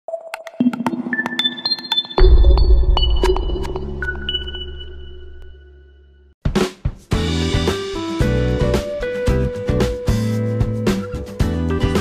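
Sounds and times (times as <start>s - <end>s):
high pinging tones: 1.3s - 6.2s
deep bass hit: 2.2s - 5.6s.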